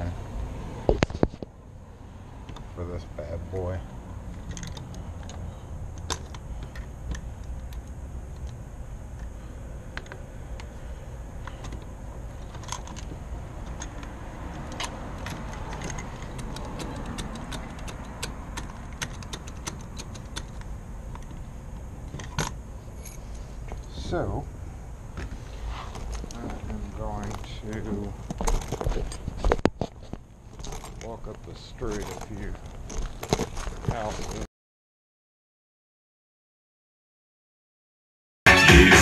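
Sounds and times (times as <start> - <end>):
lockbox clicking and rattling: 11.5 - 21.4, 30.6 - 31.1, 31.8 - 34.4.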